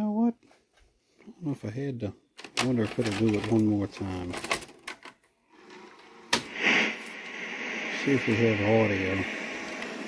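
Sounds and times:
steady hiss: 6.0s - 10.0s.

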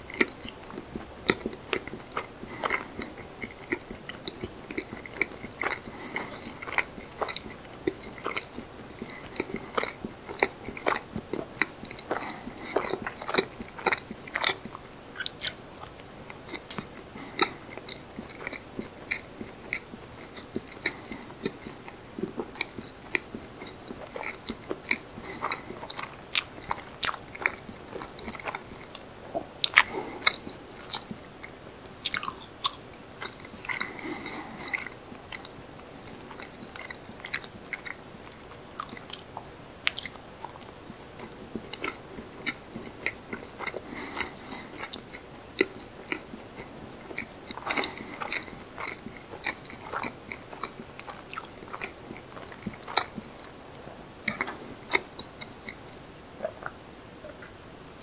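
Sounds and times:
wet sticky chewing: 0.0s - 29.0s, 29.6s - 53.6s, 54.2s - 57.5s.

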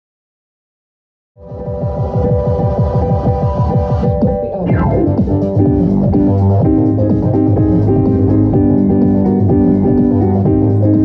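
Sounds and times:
electronic synthesizer music: 1.4s - 11.0s.

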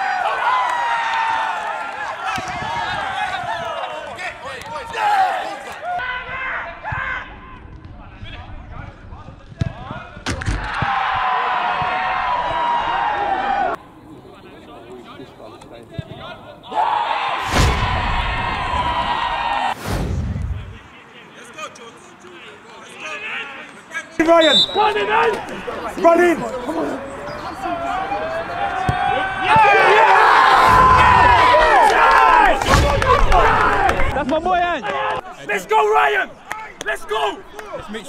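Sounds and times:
men shouting and cheering: 0.0s - 7.6s, 10.6s - 13.8s, 16.2s - 19.8s, 22.4s - 38.0s.

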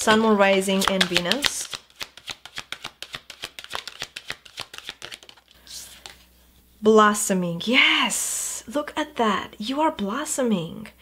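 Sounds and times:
cards being shuffled: 0.0s - 6.3s
soft brushing of cards: 0.1s - 6.3s.

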